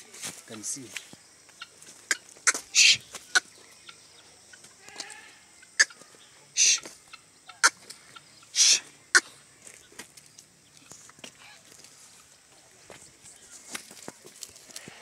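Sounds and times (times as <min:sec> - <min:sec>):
guineafowl hissing calls: 0:01.6 - 0:03.6, 0:04.2 - 0:09.4
guineafowl harsh calls: 0:01.6 - 0:09.4, 0:11.4 - 0:11.7.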